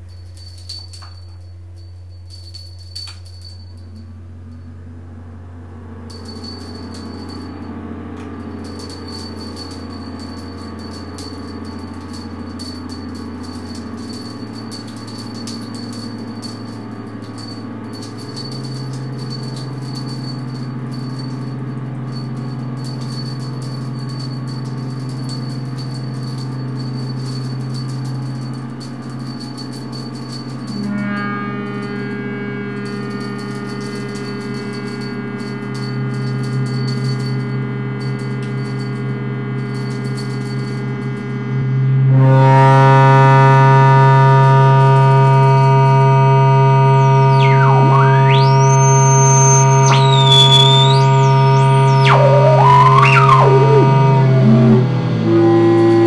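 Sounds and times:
thin high whine: 0:00.0 - 0:56.0
sustained low drone tones: 0:02.3 - 0:56.0.

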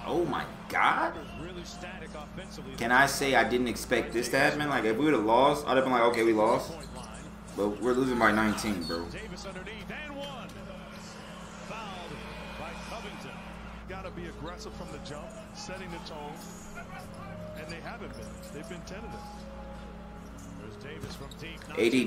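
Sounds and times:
shoe squeaks and clicks: 0:06.0 - 0:09.3, 0:14.2 - 0:22.0.

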